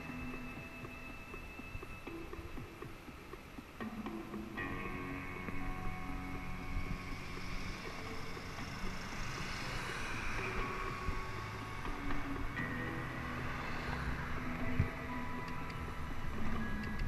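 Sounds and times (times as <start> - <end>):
city traffic: 0.0 - 17.0
faint music: 0.0 - 17.0
wind noise: 0.0 - 17.0.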